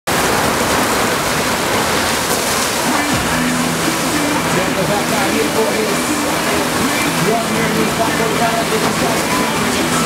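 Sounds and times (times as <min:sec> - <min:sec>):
rush of pumped water: 0:00.1 - 0:10.0.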